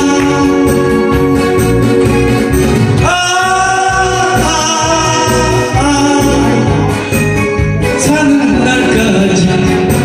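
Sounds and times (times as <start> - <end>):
man singing into a microphone: 0.0 - 1.2, 3.0 - 7.1, 7.8 - 10.0
accompaniment with a steady beat: 0.0 - 10.0.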